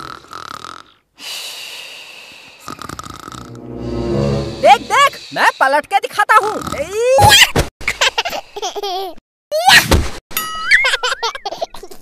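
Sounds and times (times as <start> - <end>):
cartoon snoring: 2.6 - 3.6.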